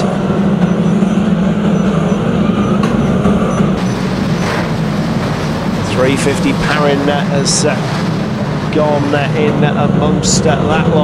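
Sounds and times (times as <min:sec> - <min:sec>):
racing car engines drone: 0:00.0 - 0:11.0.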